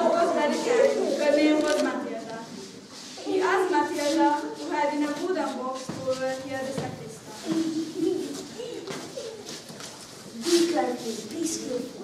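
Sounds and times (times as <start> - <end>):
child murmuring: 7.5 - 9.6.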